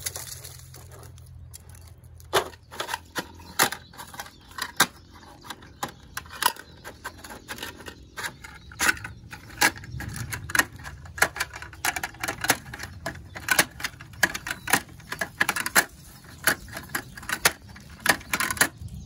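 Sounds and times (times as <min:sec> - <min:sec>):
plastic toy clicks and rattles: 0:02.3 - 0:19.0.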